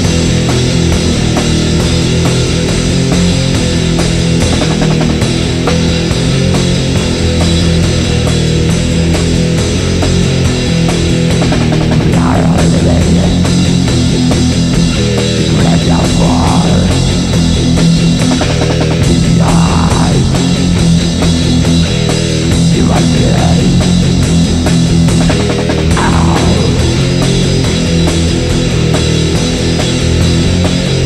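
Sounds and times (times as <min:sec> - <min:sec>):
distorted electric guitars: 0:00.0 - 0:31.0
drum kit playing: 0:00.0 - 0:31.0.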